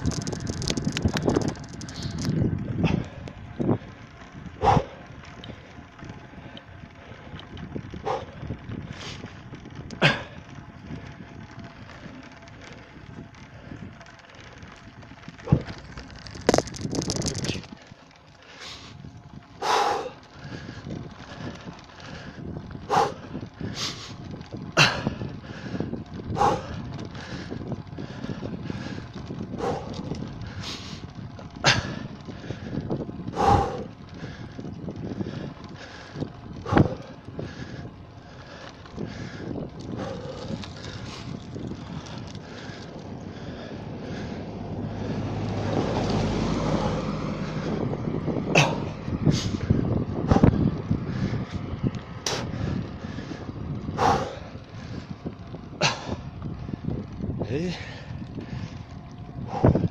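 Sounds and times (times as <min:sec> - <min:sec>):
bicycle knocks and rattles: 0:00.0 - 0:59.9
bicycle tyres rolling on asphalt: 0:00.0 - 0:59.9
wind noise: 0:00.0 - 0:59.9.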